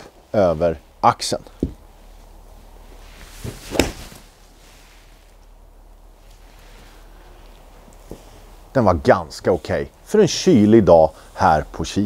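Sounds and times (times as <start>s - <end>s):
golf club swish: 2.7s - 5.6s
golf club cracking ball: 3.5s - 4.2s.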